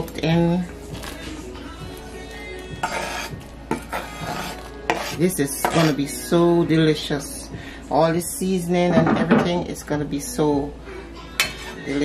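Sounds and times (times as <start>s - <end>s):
knife scraping wooden cutting board: 2.8s - 6.0s.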